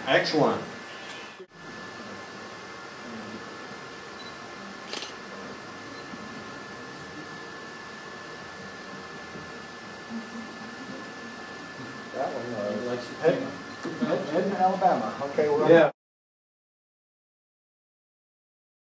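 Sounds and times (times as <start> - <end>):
thin high whine: 0.0 - 15.9
faint murmuring voices: 1.2 - 15.9.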